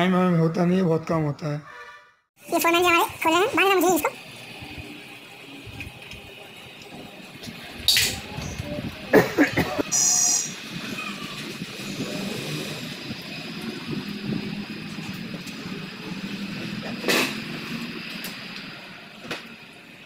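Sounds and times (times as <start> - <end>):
workshop background hum: 2.4 - 20.0.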